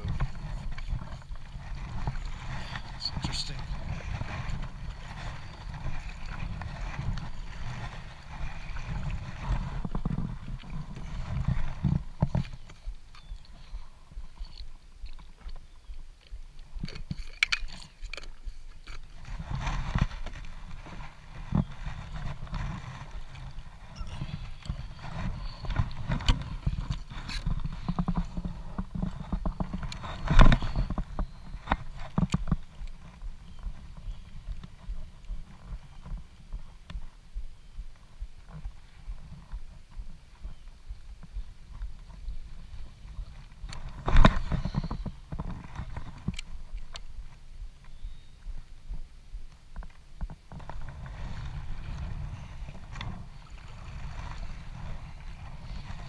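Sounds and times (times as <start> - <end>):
paddle strokes: 0.0 - 56.0
water lapping hull: 0.0 - 56.0
wind rumble on microphone: 0.0 - 56.0.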